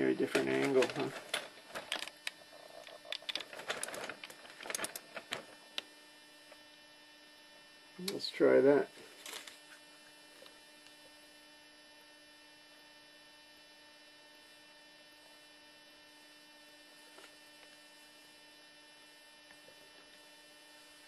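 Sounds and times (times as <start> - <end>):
faint electrical hum: 0.0 - 21.0.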